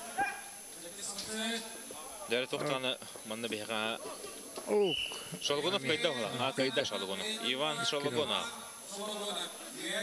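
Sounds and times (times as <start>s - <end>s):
man's voice fragments: 5.3s - 10.0s.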